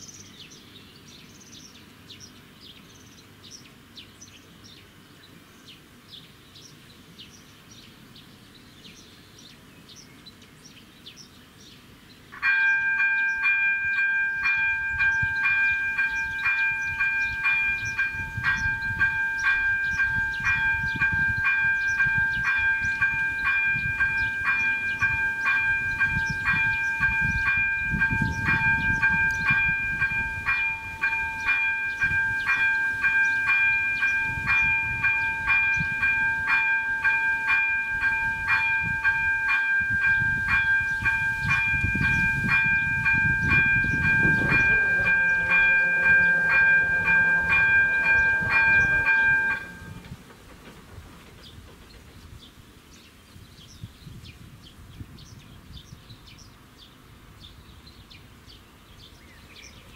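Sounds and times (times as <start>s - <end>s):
level crossing warning bell ringing: 12.4s - 50.2s.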